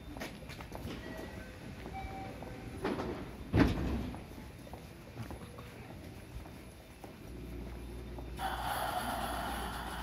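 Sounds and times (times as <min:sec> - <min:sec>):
footsteps on concrete: 0:00.0 - 0:08.4
electric train humming: 0:06.6 - 0:10.0.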